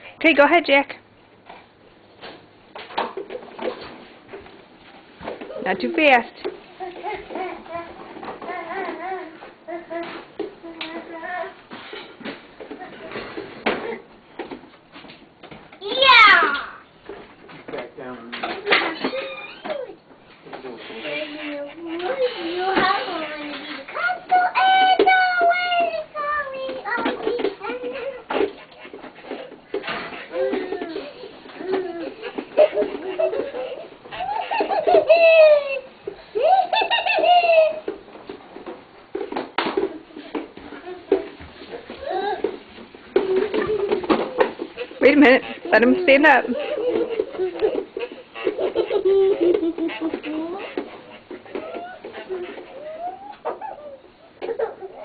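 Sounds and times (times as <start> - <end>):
small children babbling: 6.8 - 11.6, 41.9 - 42.6, 51.5 - 55.0
children babbling: 46.6 - 55.0
child squealing: 51.6 - 54.0.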